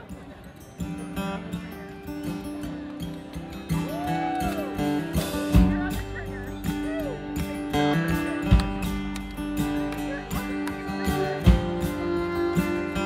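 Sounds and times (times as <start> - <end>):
acoustic guitar strumming: 0.0 - 13.0
bass and drums: 3.9 - 10.3, 11.4 - 13.0
fiddle sliding: 9.6 - 13.0.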